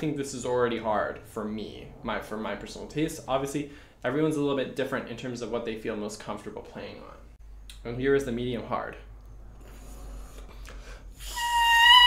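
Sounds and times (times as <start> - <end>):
oboe reed high note: 11.2 - 12.0.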